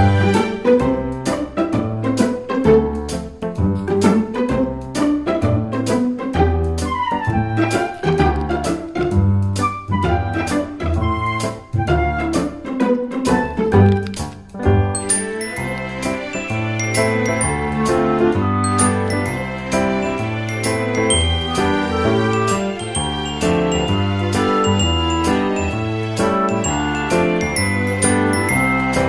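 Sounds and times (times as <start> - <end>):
bell-like melody with bass and beat: 15.0 - 29.0.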